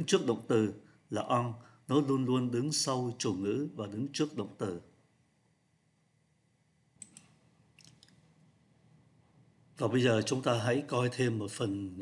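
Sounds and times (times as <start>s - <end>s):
computer mouse clicks: 7.0s - 8.2s.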